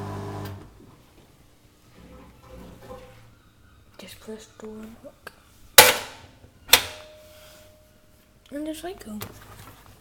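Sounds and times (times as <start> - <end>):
faint steady tone: 7.0 - 8.4.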